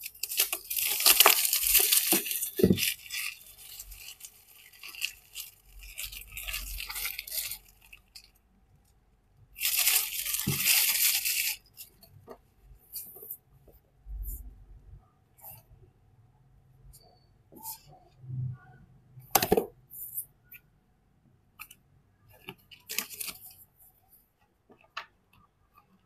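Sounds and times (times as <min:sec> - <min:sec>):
plastic shrink wrap crinkling: 0:00.0 - 0:08.4, 0:09.6 - 0:12.3, 0:22.4 - 0:23.7.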